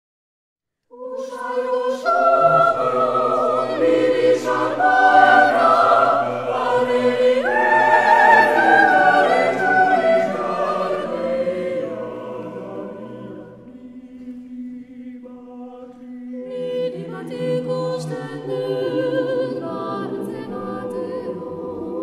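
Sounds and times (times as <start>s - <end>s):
vocal ensemble singing in harmony: 0.9s - 22.0s.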